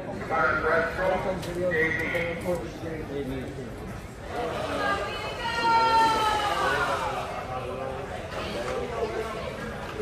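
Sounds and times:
teenagers chattering: 0.0 - 10.0.

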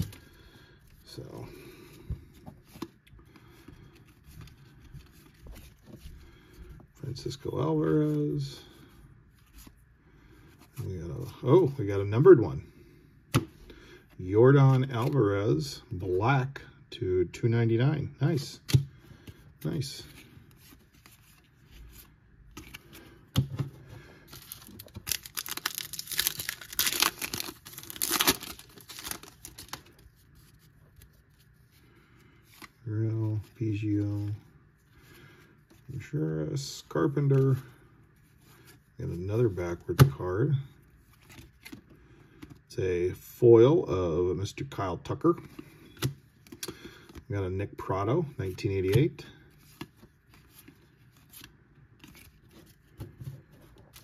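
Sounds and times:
foil wrapper tearing and crinkling: 24.4 - 29.9.

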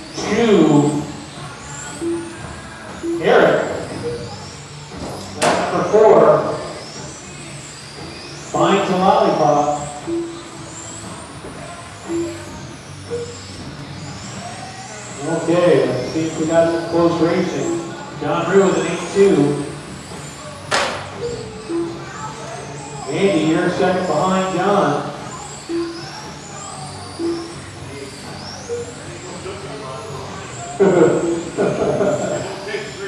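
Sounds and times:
electric motors whining: 0.0 - 33.0
short beeps: 0.2 - 7.2, 8.0 - 11.2, 12.0 - 13.6, 14.3 - 19.8, 20.8 - 32.2.

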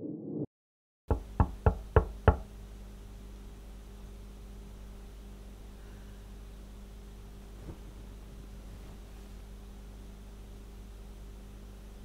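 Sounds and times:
low hum and hiss: 1.1 - 12.0.

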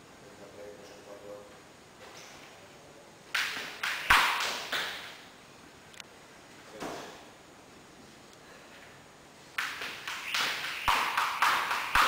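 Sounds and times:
jump rope slapping a mat: 3.3 - 5.2, 9.6 - 12.0.

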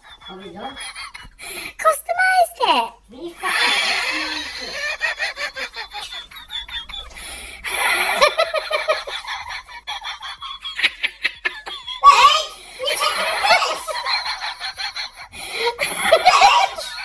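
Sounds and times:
person laughing hard: 3.4 - 17.0.

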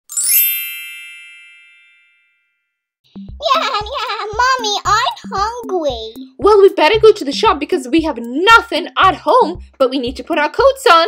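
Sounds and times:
sparkly chime shimmer: 0.0 - 2.4.

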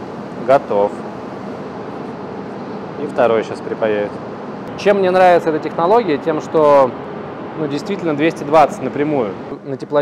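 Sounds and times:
machinery or ventilation running: 0.0 - 10.0.

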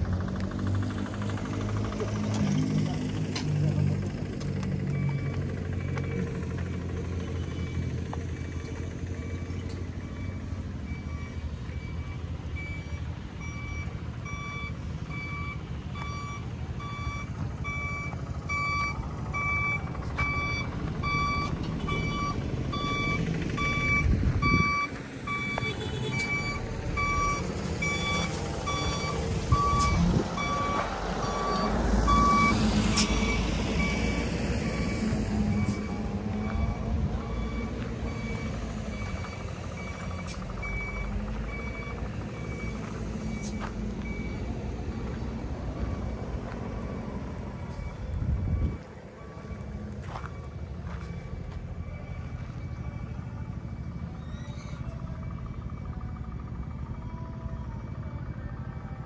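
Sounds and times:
truck engine running: 0.0 - 59.0
truck reversing alarm beeping: 0.0 - 59.0.

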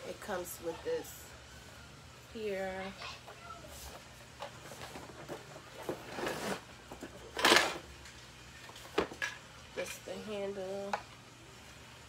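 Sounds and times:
plastic scraping: 4.5 - 7.8.

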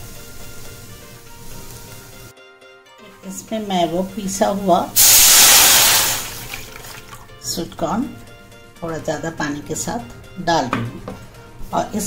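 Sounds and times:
liquid sizzling in a hot wok: 0.0 - 2.3, 4.8 - 7.2
liquid pouring: 5.0 - 7.4.

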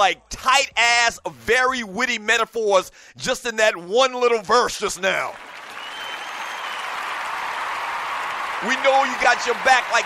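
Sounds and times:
crowd applause: 5.3 - 10.0
faint high whistle: 5.8 - 7.0.

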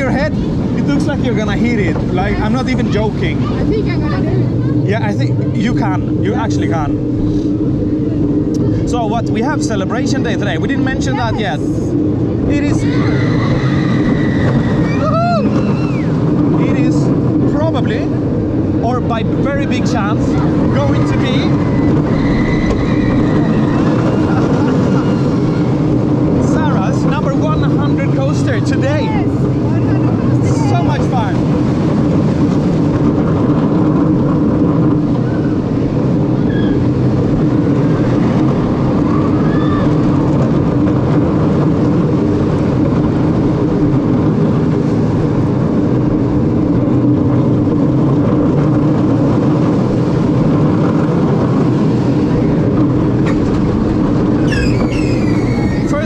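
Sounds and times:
roller coaster running on track: 0.0 - 56.0
wind rushing over microphone: 0.0 - 56.0.

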